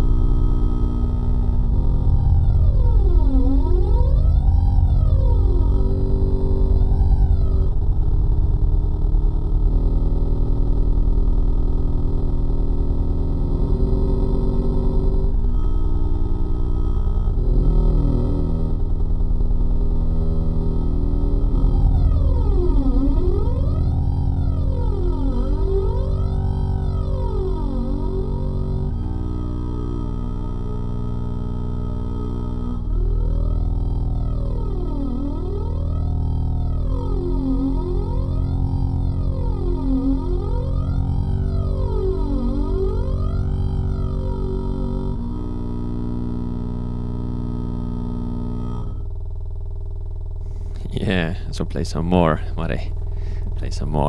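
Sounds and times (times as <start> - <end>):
bagpipe bass drones: 0.0 - 54.0
resonant sweep gliding: 1.2 - 7.8, 20.7 - 29.2, 32.8 - 45.2.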